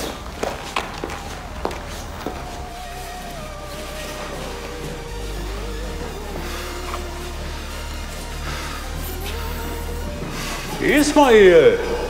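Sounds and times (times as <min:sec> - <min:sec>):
footsteps on a hard floor: 0:00.0 - 0:10.9.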